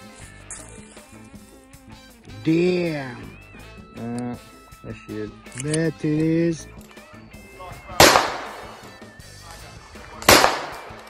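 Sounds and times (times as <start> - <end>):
faint background music: 0.0 - 11.0
revolver firing blanks: 8.0 - 8.9, 10.2 - 11.0.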